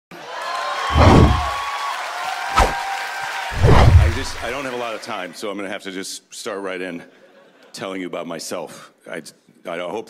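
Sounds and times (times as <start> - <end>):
deep booms: 0.9 - 1.6, 3.6 - 4.6.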